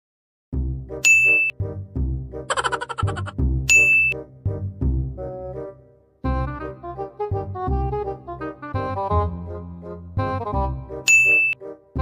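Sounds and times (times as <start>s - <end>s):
low background music notes: 0.6s - 12.0s.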